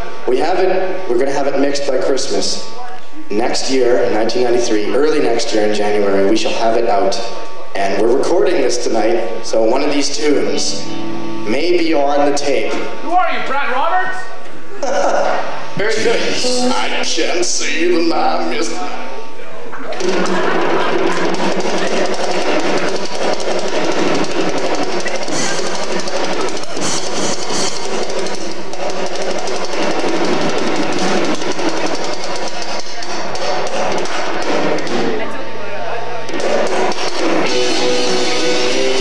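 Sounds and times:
guitar chords: 5.2s - 13.5s, 16.0s - 17.2s, 36.7s - 39.0s
live rock band playing: 36.8s - 39.0s.

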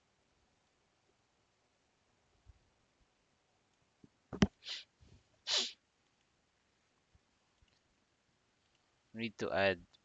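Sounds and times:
person sneezing: 4.5s - 4.8s, 5.5s - 5.8s.

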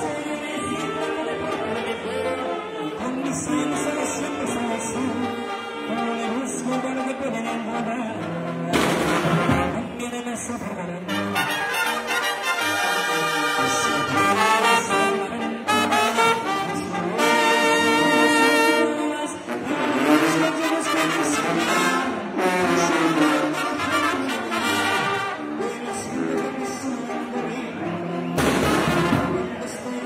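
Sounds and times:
brass band playing: 0.0s - 30.0s
drums: 8.2s - 10.0s, 28.3s - 29.6s.

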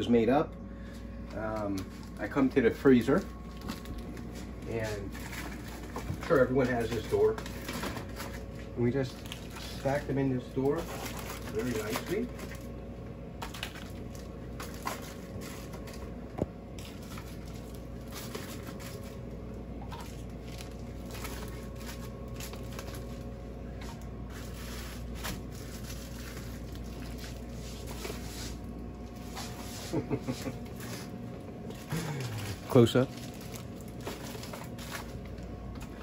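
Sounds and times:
freezer low hum: 0.0s - 36.0s
plastic crinkling: 1.6s - 12.8s, 16.7s - 35.5s.

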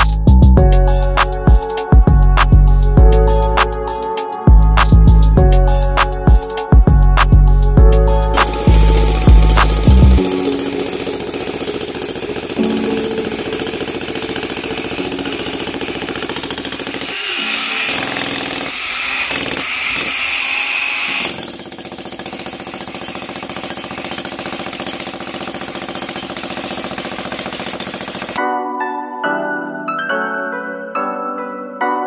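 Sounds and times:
jackhammer breaking concrete: 8.3s - 28.4s.

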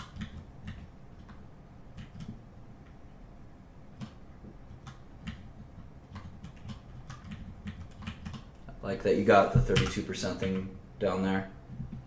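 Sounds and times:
keyboard keys clicking: 0.0s - 2.4s, 4.0s - 8.6s.

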